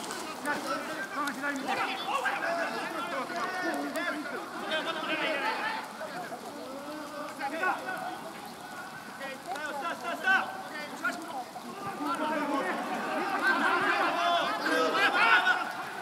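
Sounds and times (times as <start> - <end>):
men shouting and calling: 0.0 - 16.0.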